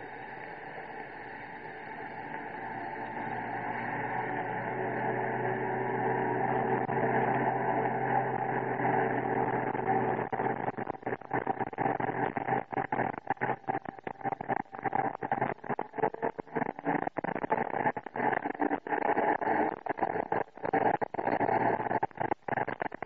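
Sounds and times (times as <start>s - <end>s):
vehicle engine on dirt track: 2.2s - 10.3s.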